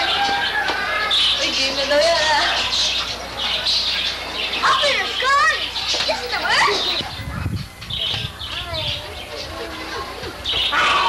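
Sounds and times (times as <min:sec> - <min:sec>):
children calling and squealing: 0:00.0 - 0:11.0.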